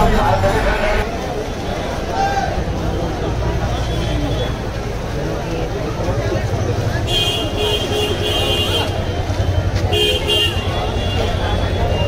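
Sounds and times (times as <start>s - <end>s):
crowd chatter: 0.0s - 12.0s
vehicle horn tooting: 7.1s - 9.1s, 9.9s - 12.0s.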